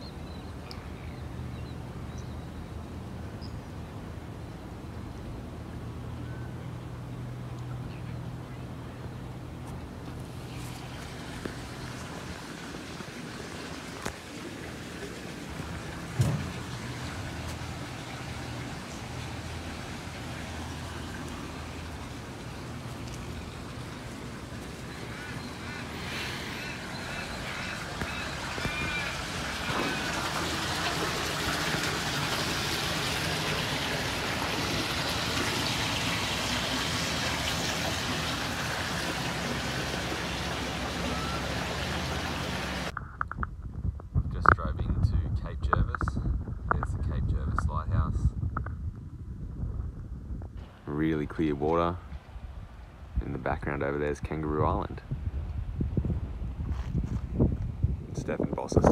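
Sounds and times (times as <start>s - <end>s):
waterbirds calling: 0.0s - 42.9s
steady outdoor hiss: 0.0s - 48.1s, 50.5s - 58.9s.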